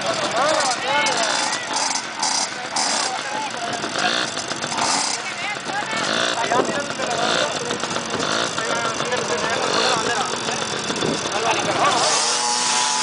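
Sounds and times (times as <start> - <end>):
dirt bike engines revving: 0.0 - 13.0
people's voices: 0.0 - 13.0.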